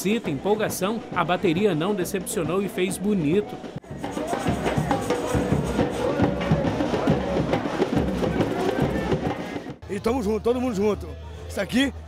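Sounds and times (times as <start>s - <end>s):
samba drum band playing: 0.0s - 10.9s
bass drums: 1.0s - 10.1s.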